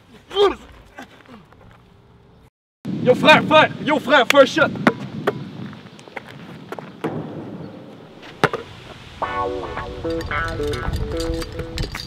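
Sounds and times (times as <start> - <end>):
outdoor background hiss: 0.0 - 12.0
basketball bouncing off board and court: 7.0 - 8.7.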